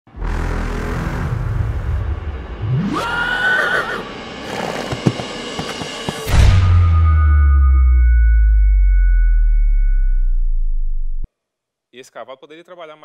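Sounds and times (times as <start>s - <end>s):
horse whinnying: 2.9s - 5.2s
hoof thuds: 4.8s - 6.6s.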